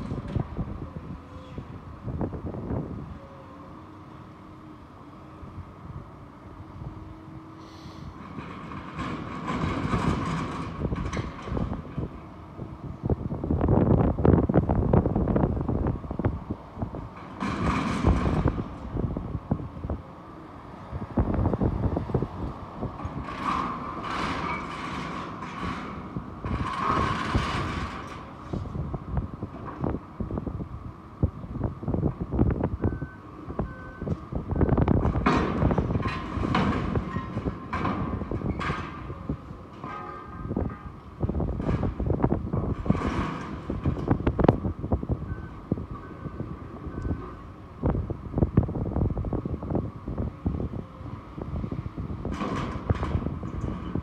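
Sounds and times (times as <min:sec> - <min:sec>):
diesel engine under load: 0:00.0 - 0:54.0
steel crunching and clanking: 0:08.2 - 0:12.1, 0:23.0 - 0:28.7, 0:34.8 - 0:44.6.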